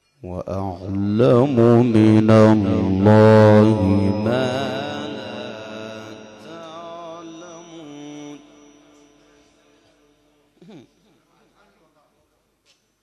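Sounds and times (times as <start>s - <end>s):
man reciting melodically: 0.2s - 10.4s.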